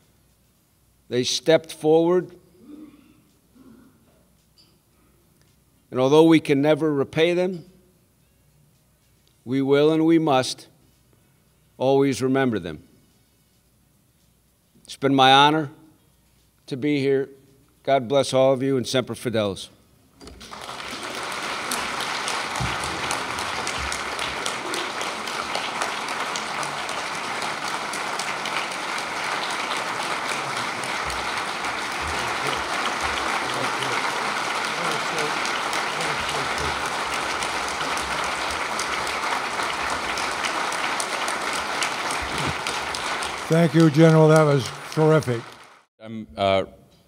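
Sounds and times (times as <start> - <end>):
audience applauding: 20.3 - 45.9.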